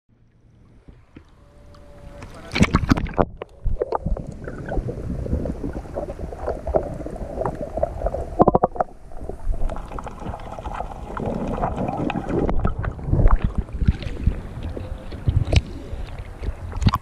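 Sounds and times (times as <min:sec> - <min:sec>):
low underwater rumble: 0:00.1 - 0:17.0
water lapping: 0:00.2 - 0:17.0
water splashing: 0:00.3 - 0:17.0
underwater bubbles crackling: 0:00.4 - 0:17.0.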